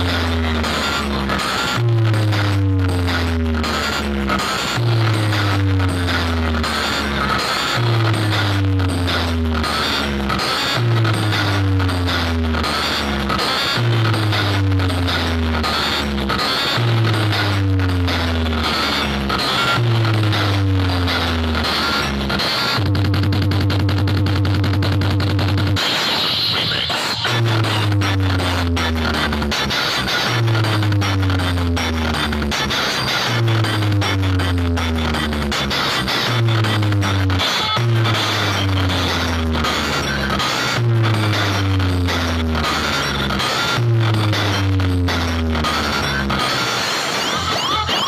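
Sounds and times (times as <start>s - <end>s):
bass-heavy music through speakers: 0.0s - 48.0s.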